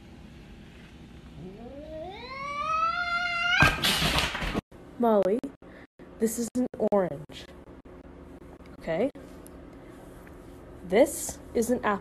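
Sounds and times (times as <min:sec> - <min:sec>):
cat yowling: 0:01.4 - 0:03.8.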